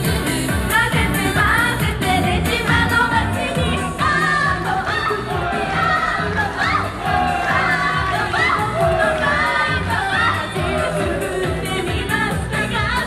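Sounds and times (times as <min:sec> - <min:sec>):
pop backing track: 0:00.0 - 0:06.4
women singing pop song: 0:00.5 - 0:13.0.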